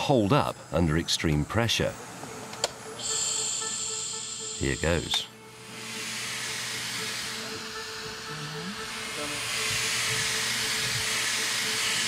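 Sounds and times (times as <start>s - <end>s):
oxygen hissing into a suit: 5.7s - 7.9s, 8.6s - 12.0s.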